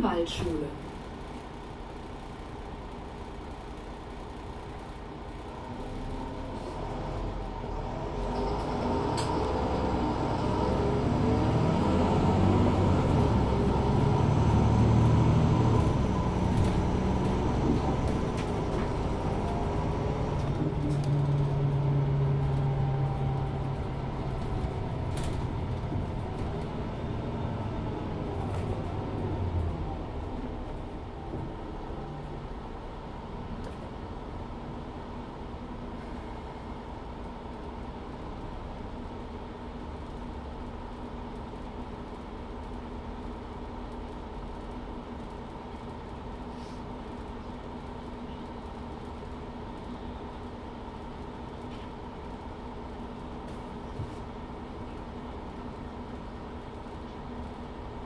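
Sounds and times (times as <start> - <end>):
bus diesel engine accelerating: 0.0 - 58.0.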